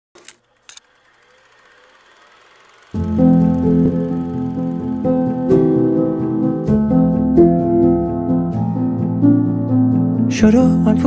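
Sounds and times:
sharp clicks: 0:00.2 - 0:05.6
thin rising tone: 0:00.2 - 0:08.9
music: 0:03.0 - 0:11.0.

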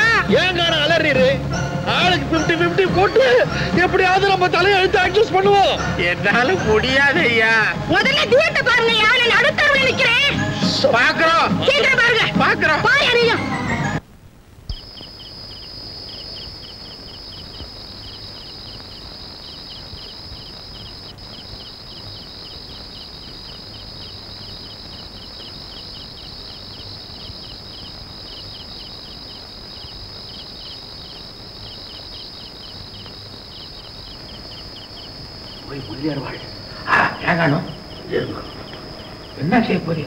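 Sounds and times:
crickets chirping: 0:00.0 - 0:40.0.

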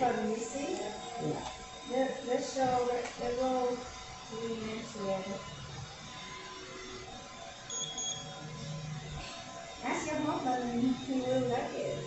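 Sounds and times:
high-pitched electronic beep: 0:07.7 - 0:08.9.

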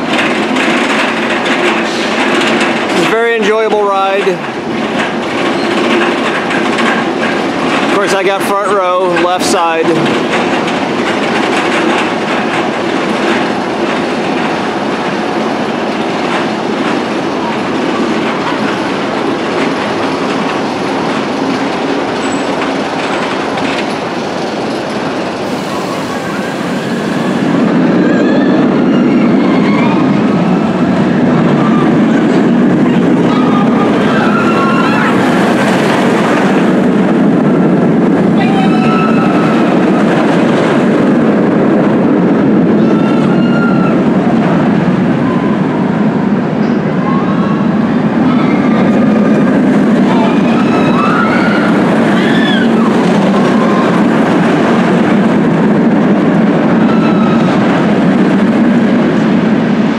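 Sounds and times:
roller coaster rumbling on track: 0:00.0 - 0:59.9.

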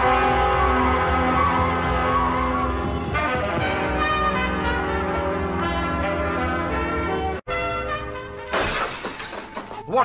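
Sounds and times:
orchestral music: 0:00.0 - 0:10.0
window glass shattering: 0:08.5 - 0:10.0.

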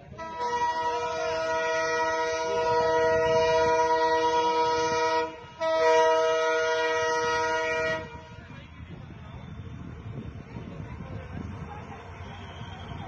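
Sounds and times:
locomotive air horn blasts: 0:00.1 - 0:08.4.

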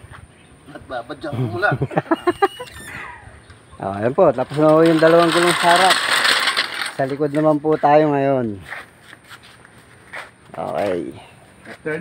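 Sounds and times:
short falling squeak: 0:02.2 - 0:03.3.

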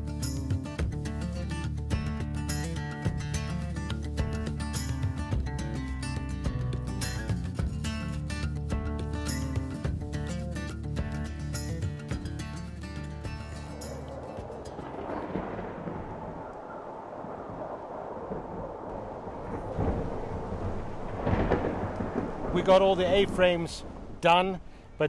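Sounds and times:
acoustic guitar music: 0:00.0 - 0:15.6
wind: 0:00.0 - 0:25.0
distant thunder: 0:13.4 - 0:25.0.

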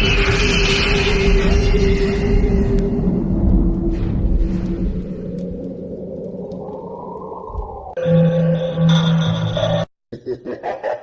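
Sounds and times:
dark low drone: 0:00.0 - 0:09.8.

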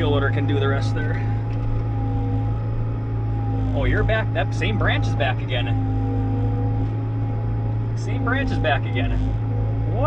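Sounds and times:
diesel engine deep hum: 0:00.0 - 0:10.0
high-pitched whine: 0:00.0 - 0:10.0.

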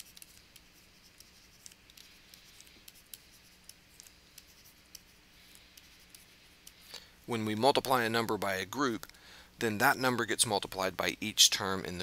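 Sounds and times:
stylus scratching on pen tablet: 0:00.0 - 0:06.8.

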